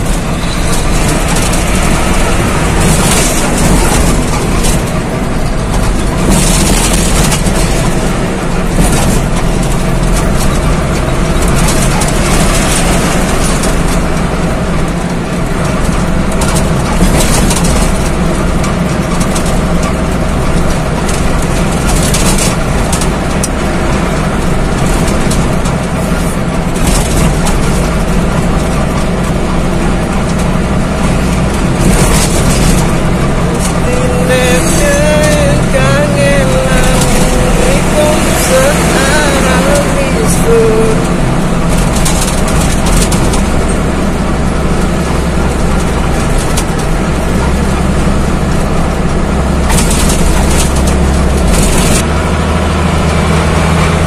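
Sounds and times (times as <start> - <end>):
low engine drone: 0.0 - 54.0.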